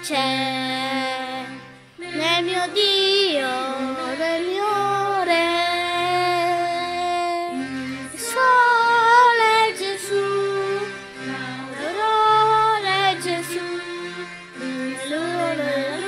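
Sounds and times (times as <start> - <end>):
instrumental backing: 0.0 - 16.0.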